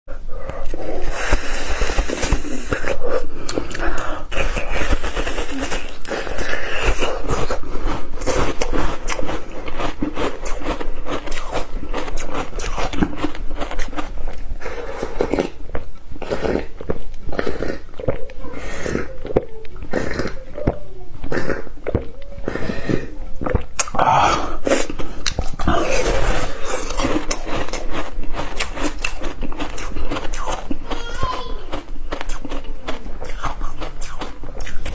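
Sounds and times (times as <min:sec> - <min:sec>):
biting and chewing ice cream: 0:00.1 - 0:34.9
mouth clicks: 0:00.4 - 0:34.9.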